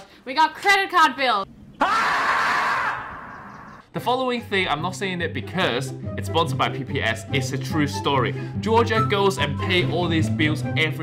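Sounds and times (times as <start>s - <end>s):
animal screaming: 1.8s - 3.8s.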